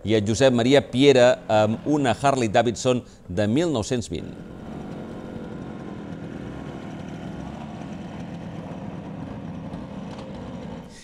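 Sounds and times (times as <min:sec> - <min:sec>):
motorcycle engine idling: 0:04.4 - 0:11.0.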